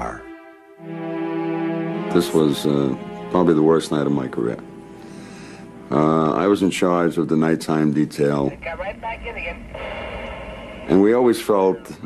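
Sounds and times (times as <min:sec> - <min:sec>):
radio hiss with held tone: 0:08.4 - 0:12.0.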